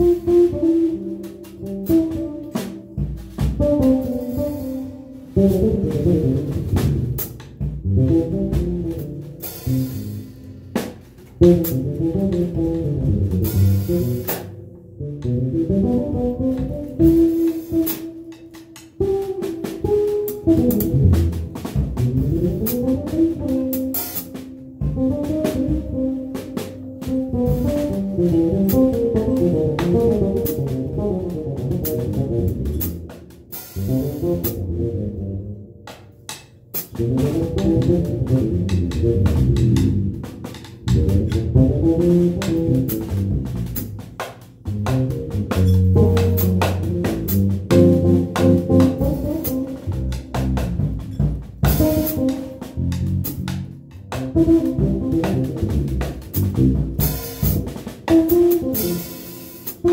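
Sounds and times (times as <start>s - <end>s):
drum kit with cymbals: 0.0s - 59.9s
electric bass: 0.0s - 59.9s.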